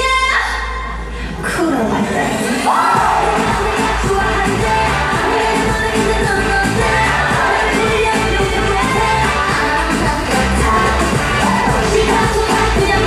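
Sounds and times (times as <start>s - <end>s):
dance-pop song: 2.1s - 13.0s
heavy bass backing track: 2.9s - 13.0s
female vocals: 3.3s - 13.0s.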